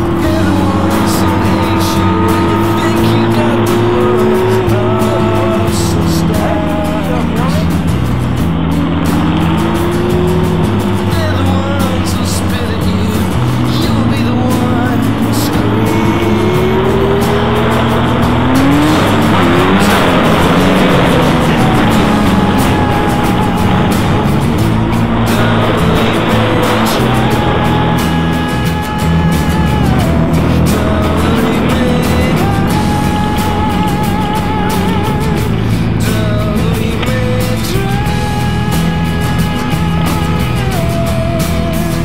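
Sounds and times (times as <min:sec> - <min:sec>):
motorcycle engines revving: 0:00.0 - 0:42.0
rushing riding noise: 0:00.0 - 0:42.0.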